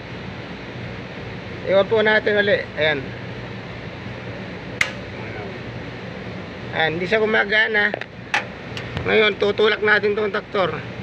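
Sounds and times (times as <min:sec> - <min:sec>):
steady low hum: 0:00.0 - 0:11.0
sharp switch click: 0:04.8 - 0:05.1.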